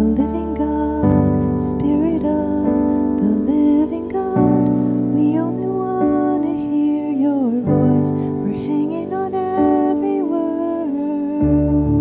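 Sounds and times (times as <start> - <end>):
electric keyboard chords: 0.0 - 12.0
woman singing: 0.0 - 12.0.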